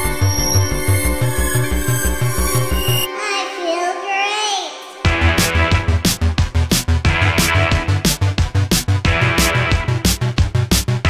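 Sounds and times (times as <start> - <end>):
high wavering voice-like tone: 0.0 - 5.1
synth music: 0.0 - 11.0.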